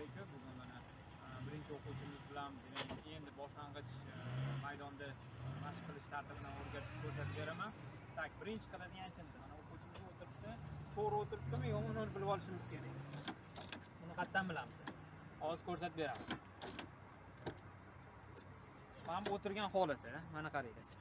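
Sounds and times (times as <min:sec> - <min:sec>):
men talking quietly: 0:00.0 - 0:16.5, 0:18.3 - 0:21.0
short clicks and knocks: 0:16.1 - 0:17.7.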